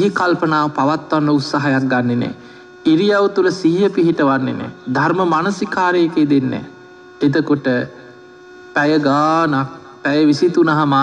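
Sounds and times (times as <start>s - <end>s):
man preaching: 0.0s - 8.0s, 8.8s - 11.0s
steady electrical hum: 0.0s - 11.0s.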